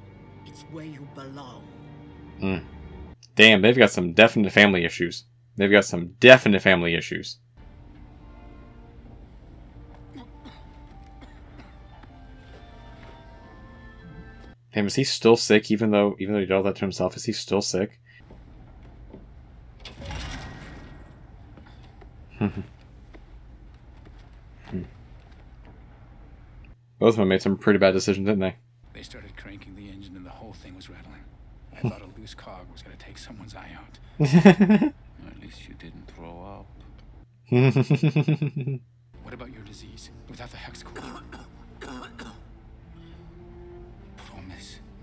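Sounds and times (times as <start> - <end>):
low steady hum: 3.2 - 45.0
man clearing his throat: 10.1 - 11.9, 22.3 - 22.8, 40.9 - 42.5.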